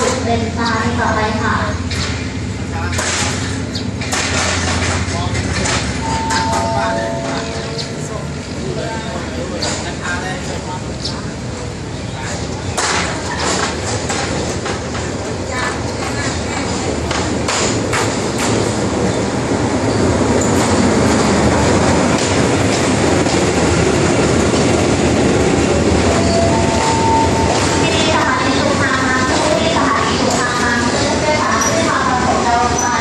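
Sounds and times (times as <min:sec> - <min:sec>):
diesel locomotive engine: 0:00.0 - 0:33.0
train coaches rumbling past: 0:00.0 - 0:33.0.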